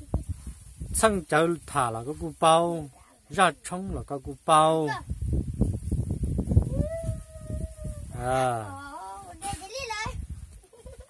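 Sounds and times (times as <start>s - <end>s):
animal howl-like call: 6.7s - 8.2s.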